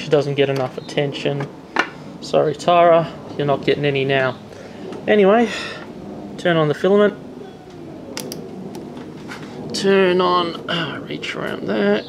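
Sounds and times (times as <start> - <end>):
power supply switch clicks: 8.2 - 8.8.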